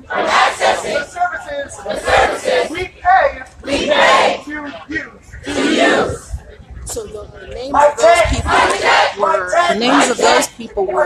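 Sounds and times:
crowd chanting: 0.0s - 4.8s, 5.4s - 6.2s, 7.8s - 11.0s.

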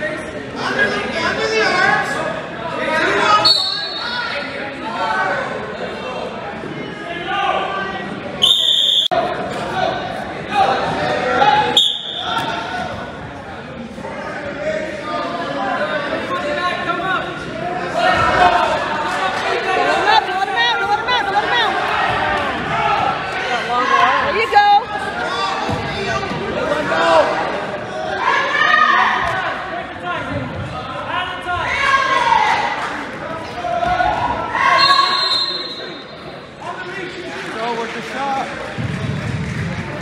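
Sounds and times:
voices calling out in gymnasium: 0.0s - 40.0s.

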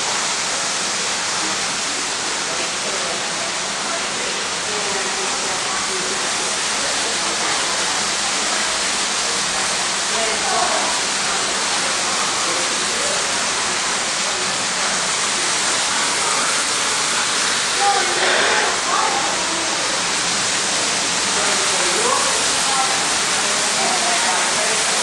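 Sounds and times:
faint voices: 0.0s - 25.0s
waterfall rushing: 0.0s - 25.0s.

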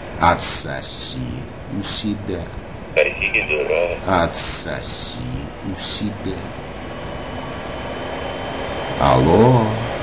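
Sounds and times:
faint steady whines: 0.0s - 10.0s.

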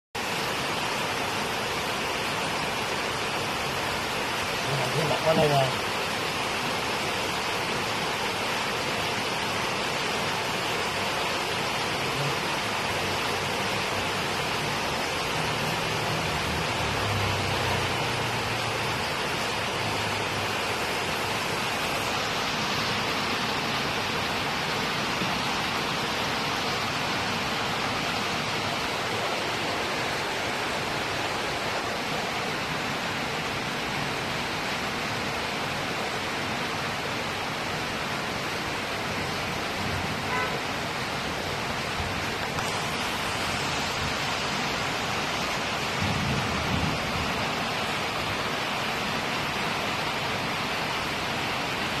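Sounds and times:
steady rushing noise: 0.2s - 33.8s, 41.5s - 50.2s.

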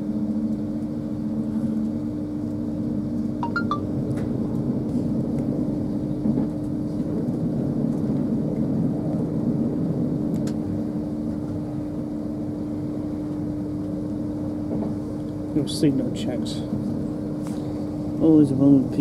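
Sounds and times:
train wheels running rumble: 4.0s - 19.0s.

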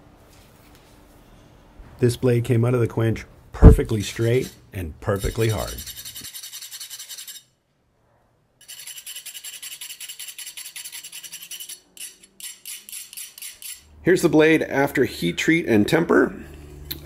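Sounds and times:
steel wool scratching metal blade: 3.9s - 7.6s, 8.6s - 13.9s.

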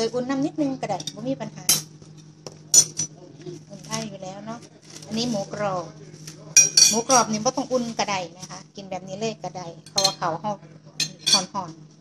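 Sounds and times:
cutlery clinking on china: 9.9s - 10.2s, 11.0s - 11.5s.

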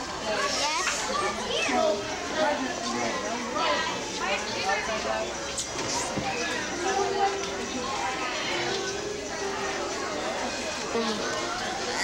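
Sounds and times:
children chattering and calling out: 0.0s - 12.0s.

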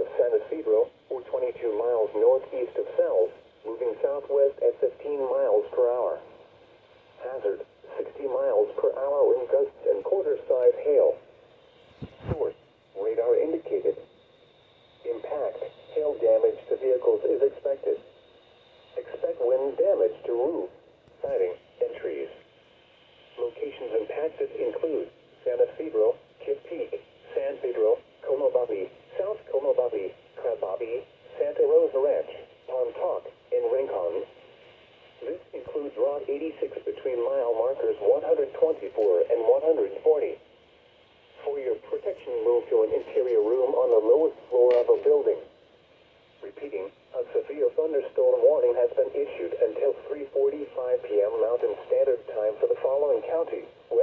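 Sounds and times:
automated voice through small speaker: 0.0s - 6.4s, 7.2s - 11.2s, 12.2s - 14.0s, 15.0s - 18.0s, 19.0s - 22.4s, 23.4s - 34.3s, 35.2s - 40.4s, 41.4s - 45.5s, 46.4s - 54.0s.

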